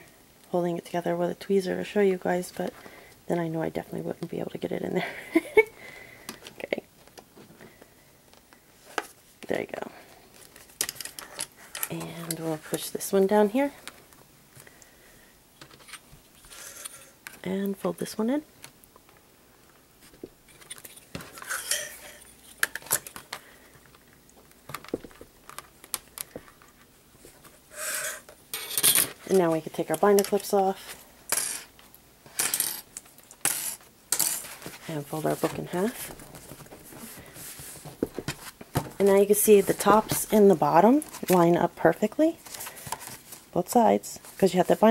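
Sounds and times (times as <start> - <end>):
person laughing: 5.0 - 5.8
paper rustling: 34.4 - 41.4.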